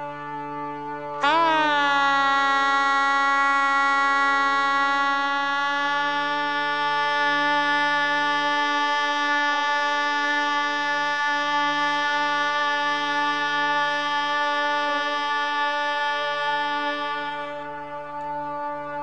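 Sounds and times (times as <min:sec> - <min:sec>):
low steady drone: 0:00.0 - 0:19.0
shehnai holding a long note: 0:00.0 - 0:19.0.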